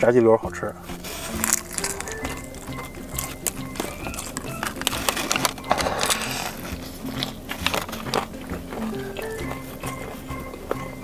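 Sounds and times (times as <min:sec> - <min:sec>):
background music: 0:00.0 - 0:11.0
crunchy chewing: 0:00.8 - 0:11.0.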